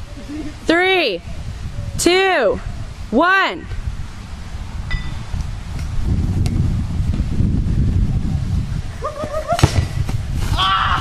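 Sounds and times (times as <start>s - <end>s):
wind rumble on microphone: 0.0s - 11.0s
person shouting: 10.6s - 11.0s.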